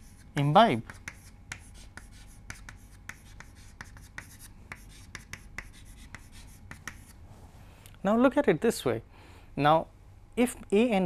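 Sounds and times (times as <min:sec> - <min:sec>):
chalk scratching on blackboard: 0:00.0 - 0:07.2.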